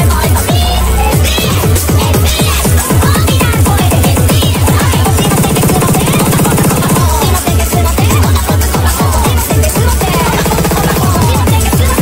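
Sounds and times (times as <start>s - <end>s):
fast kick drum roll: 1.2s - 12.0s.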